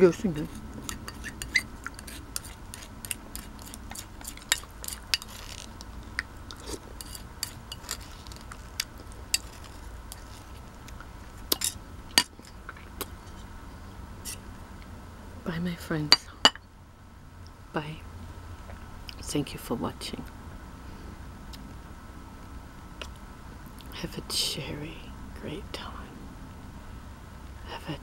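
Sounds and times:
spoon scraping ceramic bowl: 0:00.4 - 0:05.7, 0:06.6 - 0:08.6, 0:09.3 - 0:10.6, 0:11.5 - 0:12.5.

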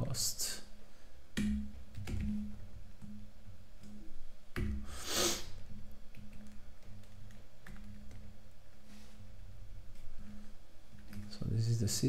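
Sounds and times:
computer keyboard keystrokes: 0:01.4 - 0:03.2, 0:06.0 - 0:08.3
sharp breath through nose: 0:04.9 - 0:05.6.

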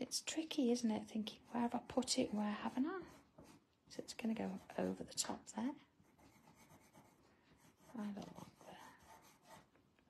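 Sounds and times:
chalk pencil scratching on tile: 0:01.2 - 0:05.4, 0:06.0 - 0:09.7.

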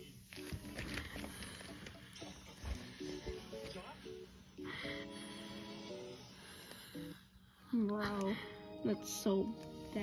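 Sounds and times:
faint music with stepping melody: 0:00.0 - 0:10.0.

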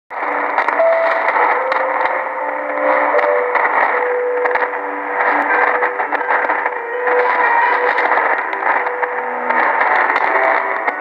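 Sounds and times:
radio static hiss: 0:00.1 - 0:11.0
weak distant radio broadcast: 0:00.1 - 0:11.0
brief crackles: 0:00.2 - 0:11.0.

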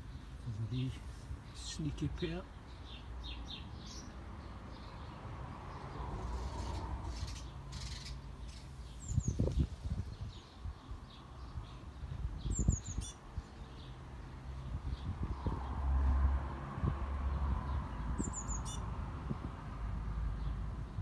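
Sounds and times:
small birds chirping: 0:00.0 - 0:15.8, 0:17.3 - 0:19.5, 0:20.1 - 0:21.0.

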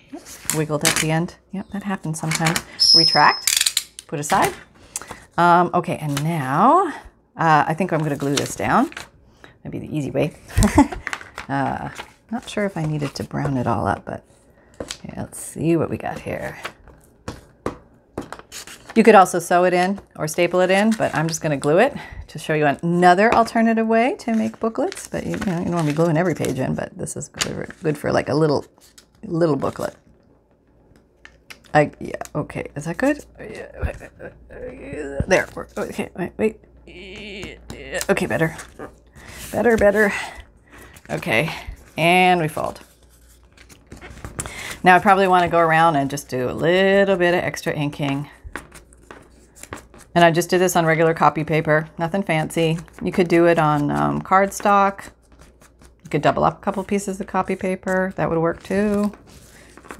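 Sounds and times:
paper being folded: 0:10.6 - 0:13.9, 0:24.2 - 0:26.8, 0:34.7 - 0:36.1, 0:37.4 - 0:47.1, 0:48.6 - 0:50.9, 0:52.2 - 0:59.9.

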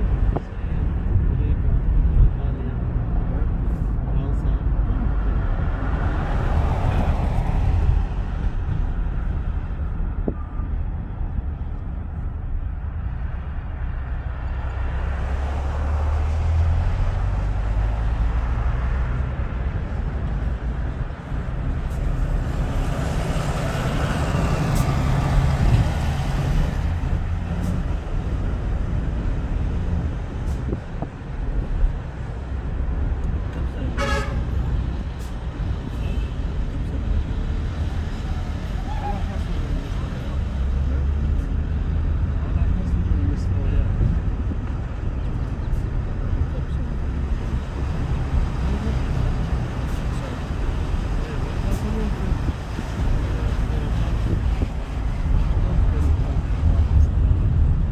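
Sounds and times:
car road noise rumble: 0:00.0 - 0:57.9
car horn toot: 0:34.0 - 0:34.6.

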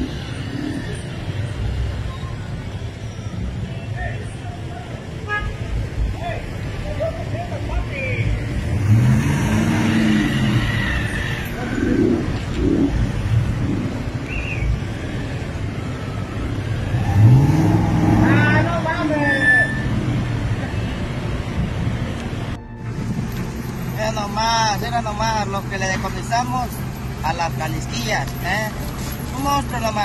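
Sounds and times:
vehicle engines passing: 0:00.0 - 0:30.0
indistinct voices: 0:06.1 - 0:14.3.

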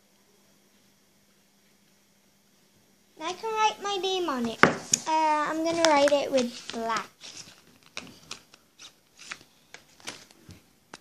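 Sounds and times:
cloth rustling: 0:04.6 - 0:10.6.

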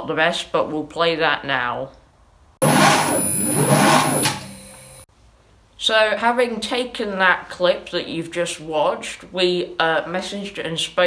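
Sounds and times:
high-pitched whine: 0:02.6 - 0:05.0
lathe motor running: 0:02.6 - 0:05.0.

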